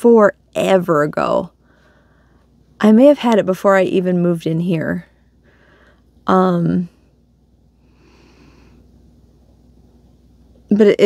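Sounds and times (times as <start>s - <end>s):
low steady hum: 0.0s - 11.0s
soft nasal exhale: 5.4s - 6.1s, 7.8s - 9.0s.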